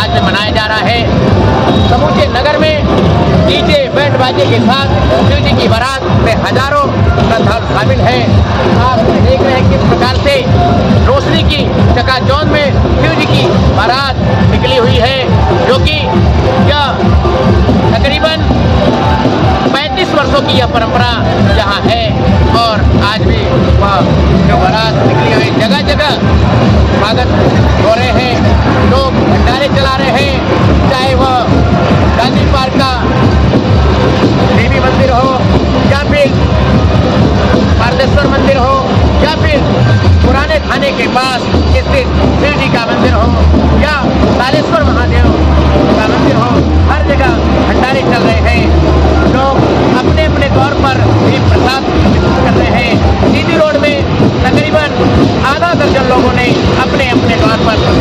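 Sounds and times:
loud dance music with heavy bass: 0.0s - 58.0s.

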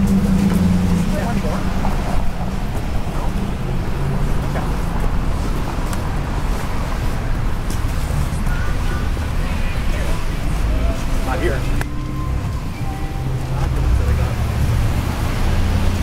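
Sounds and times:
passers-by talking: 0.0s - 16.0s
traffic rumble: 0.0s - 16.0s.

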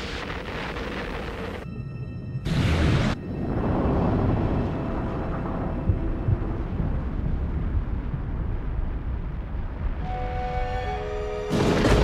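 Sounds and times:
deep volcanic rumble: 0.0s - 1.6s, 2.5s - 10.3s.

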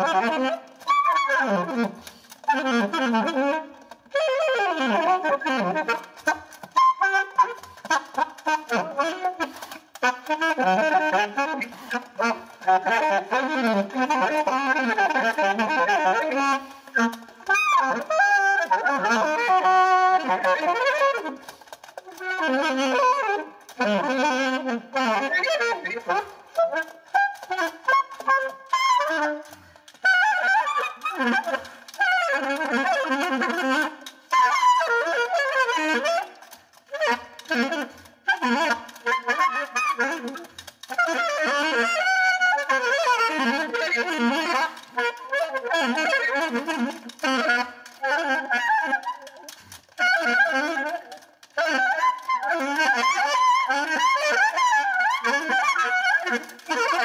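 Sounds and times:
alto saxophone improvising: 0.0s - 57.0s.

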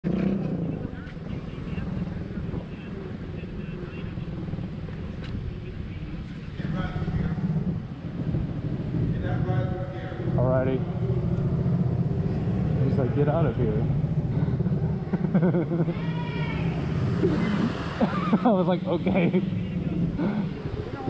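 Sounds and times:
motorcycle engine running: 6.5s - 21.0s.

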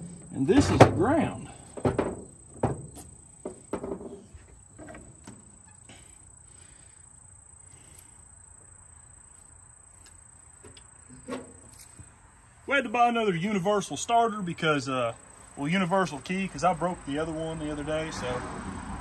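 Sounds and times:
faint insects: 0.0s - 19.0s.

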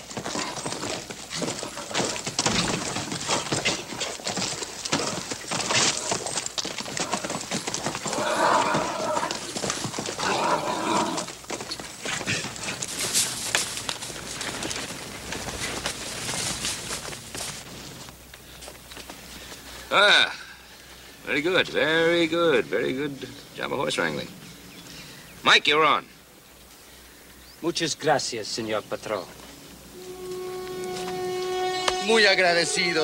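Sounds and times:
horse hooves pounding dirt: 0.0s - 19.9s
horse whinnying: 6.9s - 11.3s.

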